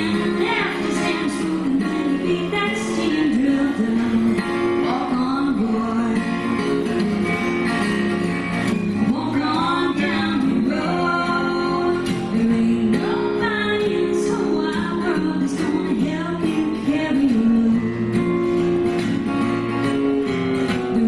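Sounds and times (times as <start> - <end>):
acoustic guitars playing: 0.0 - 21.0
people singing: 9.1 - 16.2.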